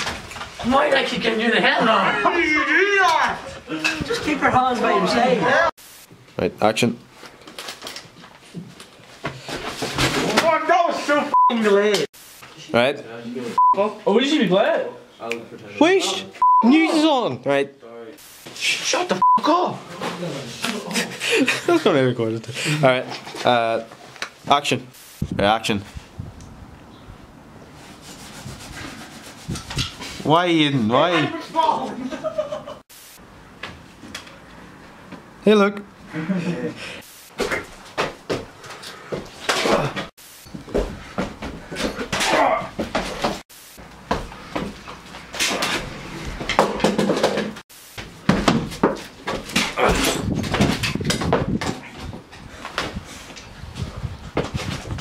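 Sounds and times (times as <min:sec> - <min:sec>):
people grunting and crying: 0:01.9 - 0:04.5, 0:18.7 - 0:21.7, 0:39.5 - 0:40.1, 0:41.7 - 0:42.8, 0:49.6 - 0:50.3
person rustling and shuffling: 0:07.1 - 0:11.2, 0:48.0 - 0:55.0.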